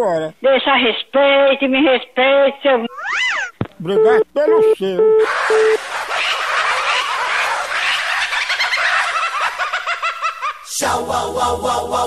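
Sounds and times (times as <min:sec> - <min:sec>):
telephone busy tone: 0:03.9 - 0:05.8
dense high calls chattering: 0:05.2 - 0:10.5.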